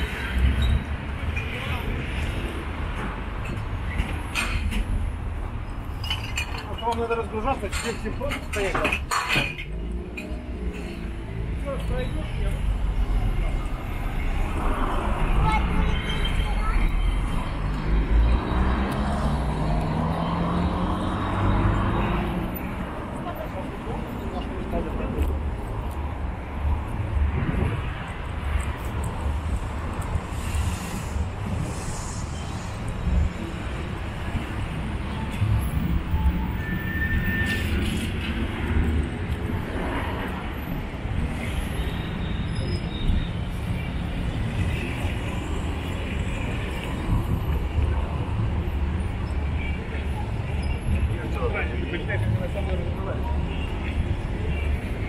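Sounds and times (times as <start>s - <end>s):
car traffic: 0.0s - 55.0s
passers-by talking: 6.6s - 33.0s, 47.6s - 55.0s.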